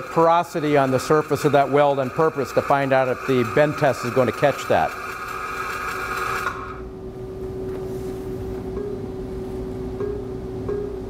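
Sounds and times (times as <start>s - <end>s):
welding arc hiss: 0.0s - 6.8s
steady hum: 0.0s - 11.0s.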